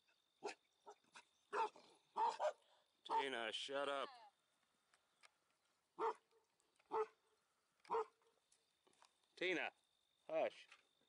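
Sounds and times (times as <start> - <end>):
dog barking: 0.4 - 3.3, 6.0 - 6.3, 6.9 - 7.2, 7.9 - 8.3.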